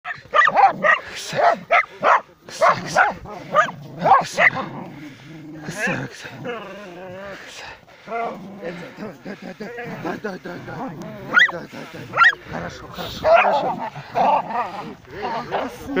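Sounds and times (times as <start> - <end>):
animals whining and yelping: 11.0 - 12.4, 13.2 - 16.0.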